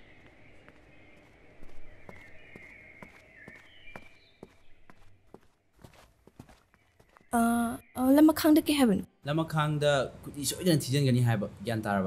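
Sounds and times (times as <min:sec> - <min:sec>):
light footsteps: 0:00.0 - 0:07.3.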